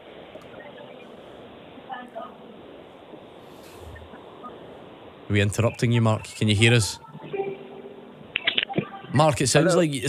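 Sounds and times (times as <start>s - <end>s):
faint music: 3.6s - 10.0s.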